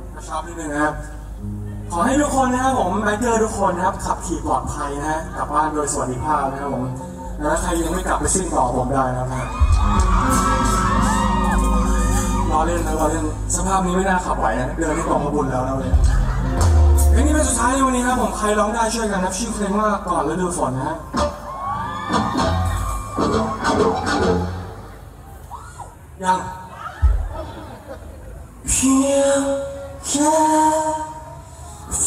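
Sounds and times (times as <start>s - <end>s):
crowd whooping and screaming: 9.0s - 13.6s, 21.1s - 28.0s
live band playing: 9.4s - 18.8s, 20.7s - 25.4s.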